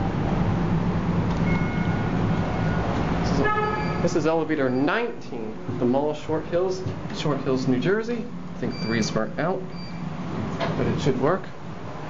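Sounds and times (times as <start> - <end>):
low rumble and hiss: 0.0 - 12.0
faint high steady tone: 1.4 - 5.1.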